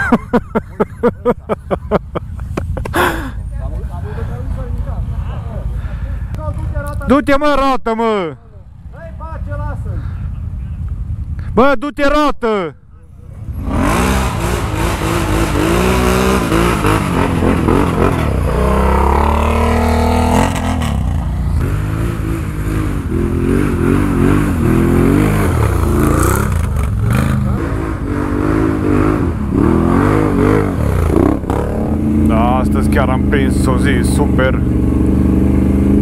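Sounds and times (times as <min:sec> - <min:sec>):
quad bike engine revving: 0:13.4 - 0:36.0.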